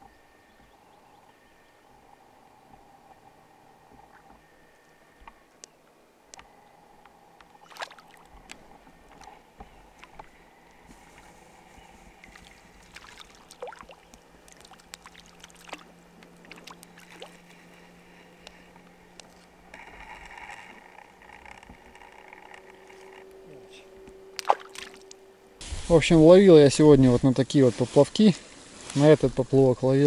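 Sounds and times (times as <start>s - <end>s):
faint low hum: 0.0s - 28.6s
small water sounds: 7.5s - 10.4s, 11.1s - 17.8s, 24.4s - 25.2s.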